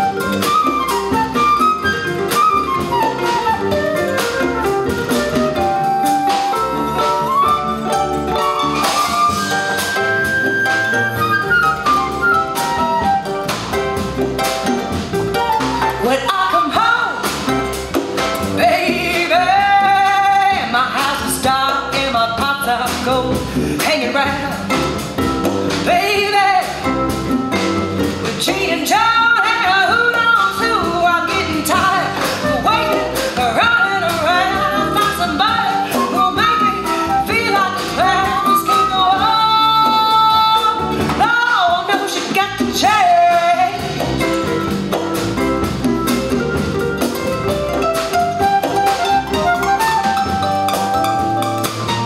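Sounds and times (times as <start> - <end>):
flute: 0.0 - 13.9, 15.3 - 17.4, 31.8 - 40.7, 47.5 - 52.0
upright bass: 0.0 - 41.3, 42.5 - 52.0
drum kit: 0.0 - 52.0
woman singing: 15.4 - 17.5, 18.6 - 25.0, 25.8 - 27.0, 28.2 - 44.2.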